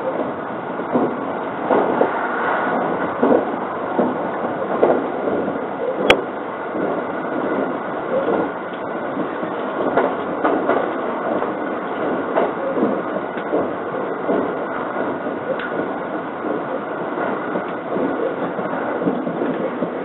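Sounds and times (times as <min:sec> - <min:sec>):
train wheels rumbling on rail: 0:00.0 - 0:20.0.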